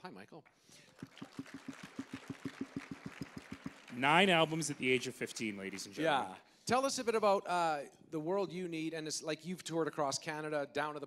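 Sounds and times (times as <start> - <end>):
close fast hand clapping: 0.5 - 6.0
audience applauding: 0.7 - 6.2.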